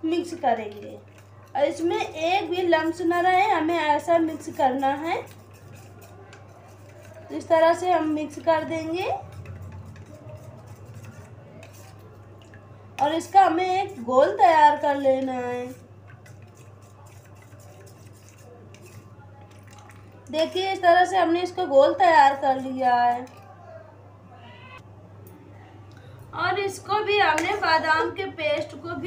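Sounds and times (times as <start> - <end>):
metal spoon stirring in steel bowl: 0.0 - 23.6, 26.5 - 29.0.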